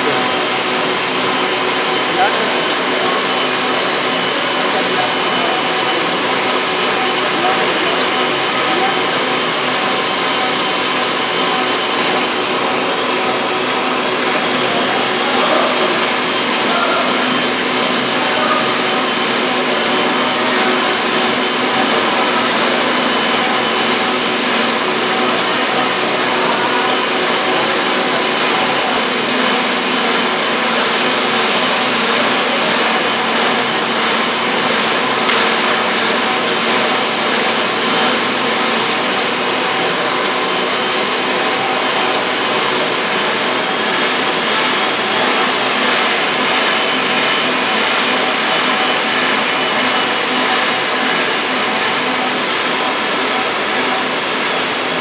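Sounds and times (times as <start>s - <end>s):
workshop machinery drone: 0.0s - 55.0s
brief higher hiss: 30.8s - 33.1s.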